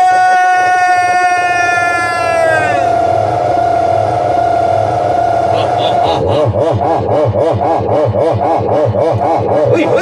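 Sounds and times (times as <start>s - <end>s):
low steady hum: 2.3s - 7.0s.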